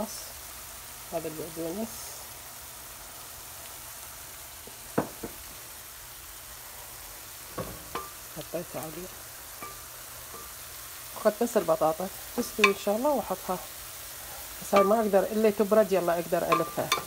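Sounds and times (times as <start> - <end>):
potatoes frying in oil: 0.0 - 17.0
wooden spoon knocking on pan: 5.0 - 5.4, 12.6 - 12.9, 16.5 - 17.0.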